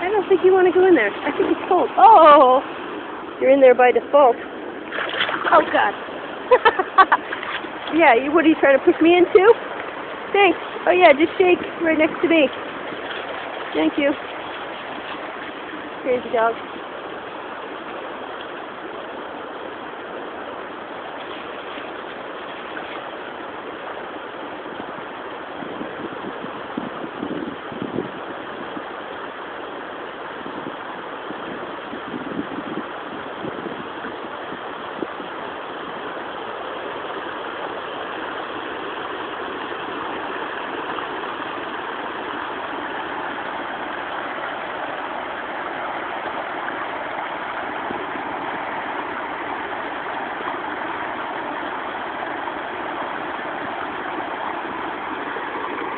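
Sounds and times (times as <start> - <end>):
water rushing over stones: 0.0 - 55.9.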